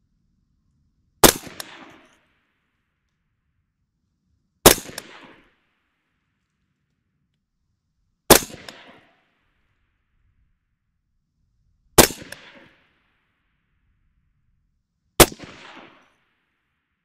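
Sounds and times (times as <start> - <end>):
suppressed rifle shots: 1.2 - 2.2, 4.6 - 5.6, 8.3 - 9.2, 12.0 - 12.9, 15.2 - 16.2.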